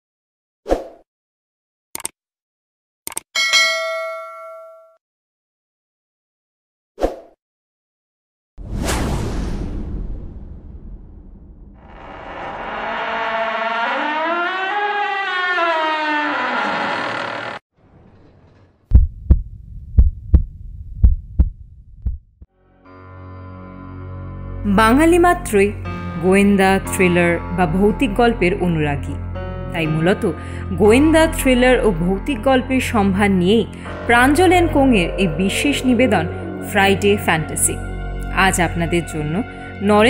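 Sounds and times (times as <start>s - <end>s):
clicks: 3.1s - 3.3s
bright bell ding: 3.4s - 5.0s
heartbeat thumps: 18.9s - 22.4s.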